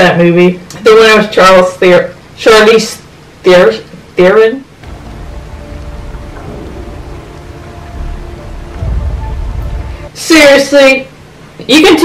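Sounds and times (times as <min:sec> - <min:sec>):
deep rumble: 0:04.7 - 0:10.2
heavy rain: 0:04.7 - 0:10.2
soft held music: 0:04.7 - 0:11.2.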